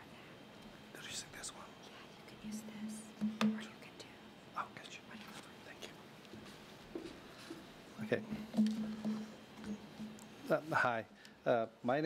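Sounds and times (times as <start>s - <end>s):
people whispering: 0.9s - 6.1s.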